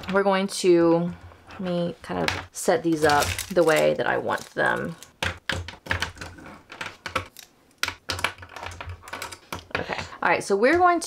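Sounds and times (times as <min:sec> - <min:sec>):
plastic pens clicking on desk: 0:02.9 - 0:09.9.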